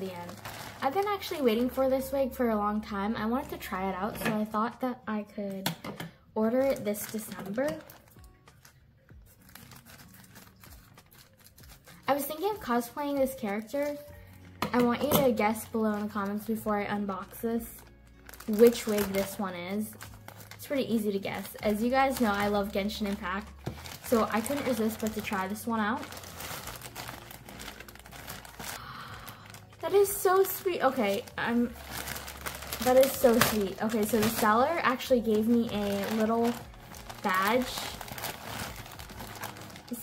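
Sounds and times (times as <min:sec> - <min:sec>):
packaging crinkling: 0:00.0 - 0:01.8, 0:06.6 - 0:12.4, 0:17.3 - 0:40.0.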